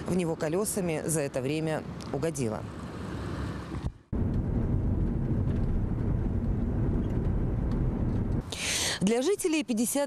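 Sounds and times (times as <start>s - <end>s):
car engine and road noise: 0.0s - 8.6s.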